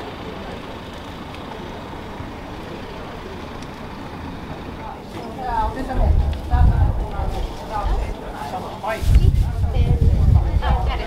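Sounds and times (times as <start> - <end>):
faint voices: 0.0 - 11.0.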